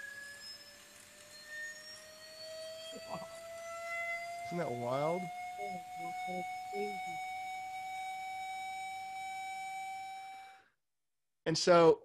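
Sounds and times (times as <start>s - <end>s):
electronic test tone: 0.0s - 10.7s.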